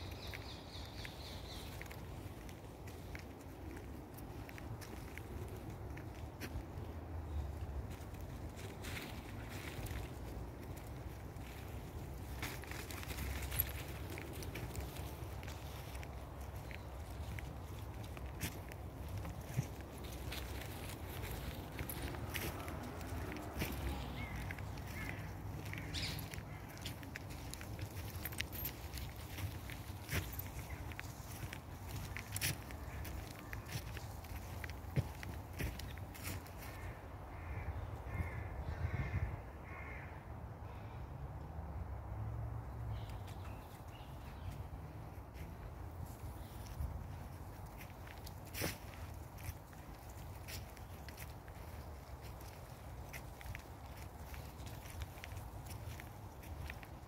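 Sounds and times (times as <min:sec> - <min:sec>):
footsteps on dry leaves: 0:00.0 - 0:37.0, 0:44.0 - 0:57.0
rustling of leaf litter: 0:07.8 - 0:36.9, 0:45.0 - 0:57.0
crow cawing: 0:36.6 - 0:40.2.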